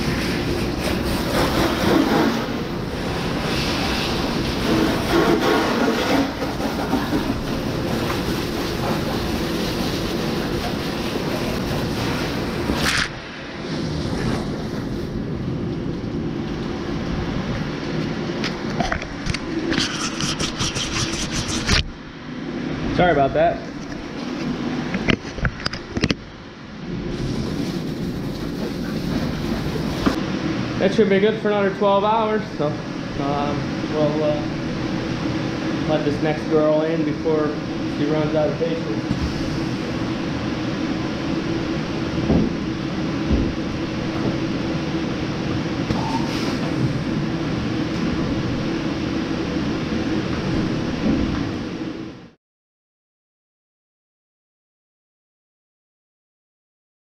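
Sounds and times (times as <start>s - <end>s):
machinery hum: 0.0s - 52.4s.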